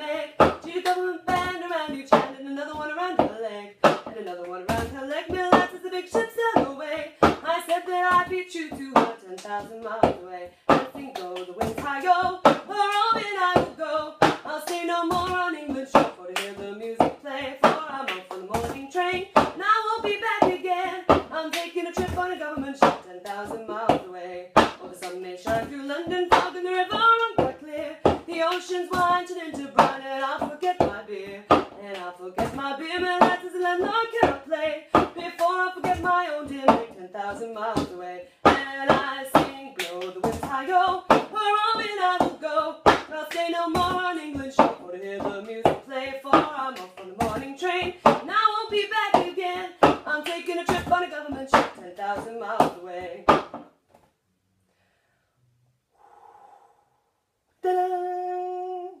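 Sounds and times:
woman singing: 0:00.0 - 0:53.6, 0:57.6 - 0:59.0
hand claps: 0:38.5 - 0:53.6
woman breathing softly: 0:55.9 - 0:57.0.

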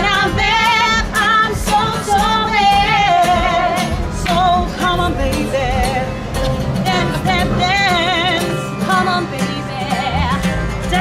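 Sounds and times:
women singing: 0:00.0 - 0:06.2, 0:06.8 - 0:11.0
strummed acoustic guitar: 0:00.0 - 0:11.0.

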